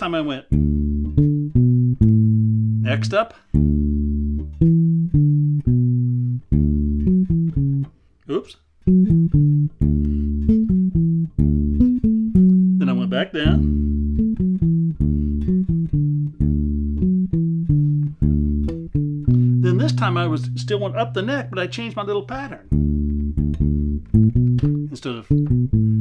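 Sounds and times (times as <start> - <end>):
electric bass guitar fingerstyle notes: 0.0 - 26.0.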